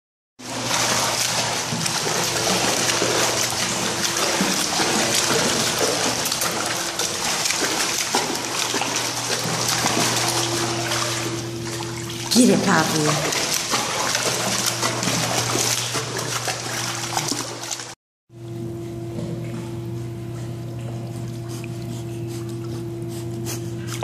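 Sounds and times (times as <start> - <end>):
low steady hum: 0.4 - 17.3, 18.4 - 24.0
dog paddling in pool water: 0.4 - 24.0.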